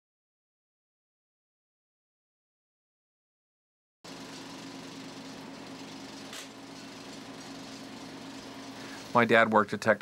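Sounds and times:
film projector humming: 4.1s - 10.0s.

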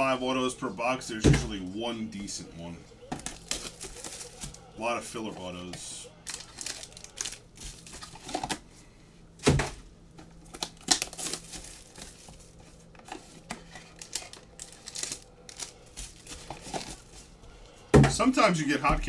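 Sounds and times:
foil packs crinkling: 3.0s - 8.6s, 10.2s - 17.4s.

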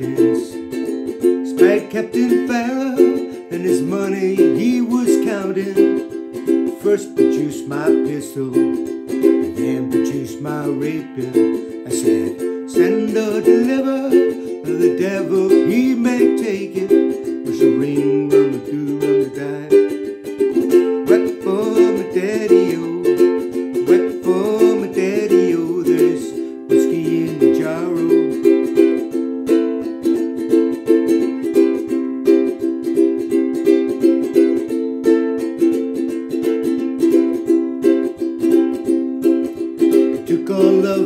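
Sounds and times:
man singing: 0.0s - 29.0s, 39.9s - 41.0s
ukulele strumming chords: 0.0s - 41.0s.

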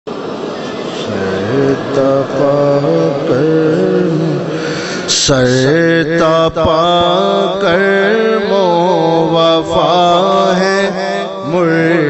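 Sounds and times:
man singing a chant: 0.9s - 12.0s.

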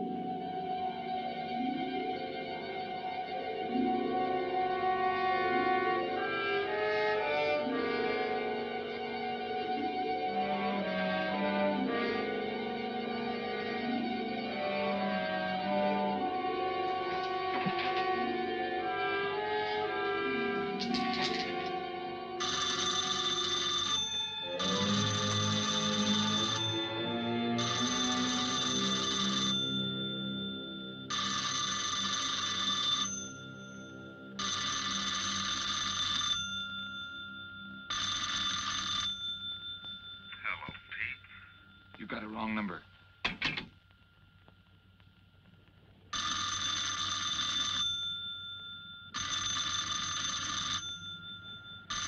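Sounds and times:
orchestral film music: 0.0s - 22.5s, 24.1s - 31.0s
electric bell telephone ringing: 13.2s - 42.8s, 46.1s - 52.0s.

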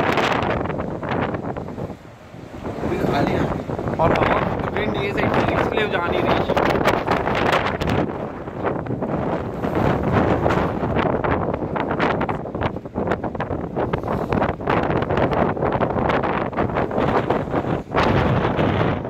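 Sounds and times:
strong wind buffeting microphone: 0.0s - 19.0s.

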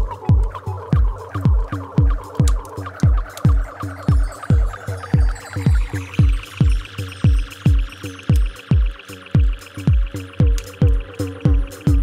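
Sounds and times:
deep kick drum: 0.0s - 12.0s
hi-hat ticks: 0.0s - 12.0s
wavering synth notes: 0.0s - 12.0s.

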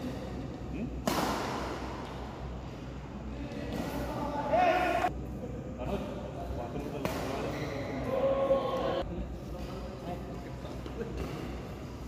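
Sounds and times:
racket hitting shuttlecock: 1.0s - 2.3s, 7.0s - 7.6s.

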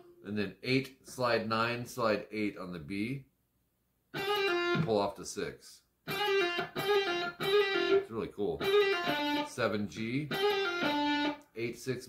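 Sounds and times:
electric guitar lead lick: 4.2s - 5.0s, 6.1s - 11.5s.

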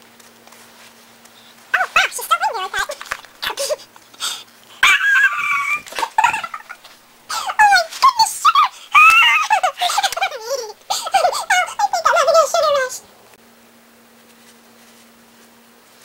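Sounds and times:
child imitating horse whinnies: 4.8s - 6.7s.

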